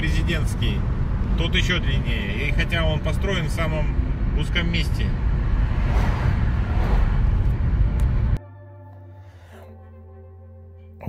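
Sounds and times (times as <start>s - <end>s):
car tyre and engine rumble: 0.0s - 8.4s
vehicle passing close: 0.0s - 8.4s.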